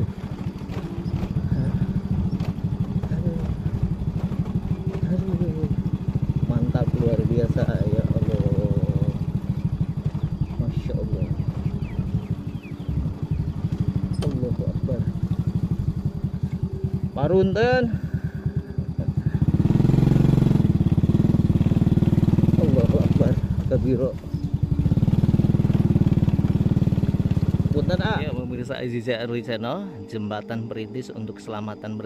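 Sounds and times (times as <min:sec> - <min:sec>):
motorcycle engine puttering: 0:00.0 - 0:30.1.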